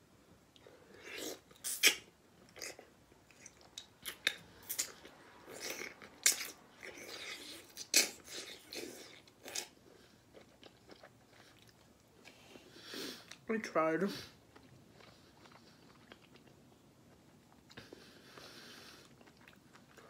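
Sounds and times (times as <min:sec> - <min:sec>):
chewing soft coconut meat: 0:00.5 - 0:13.4, 0:14.2 - 0:20.0.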